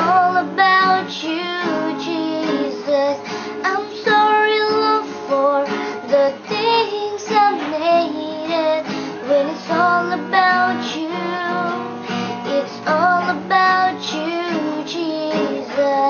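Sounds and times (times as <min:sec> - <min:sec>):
girl singing: 0:00.0 - 0:16.0
strummed acoustic guitar: 0:00.0 - 0:16.0.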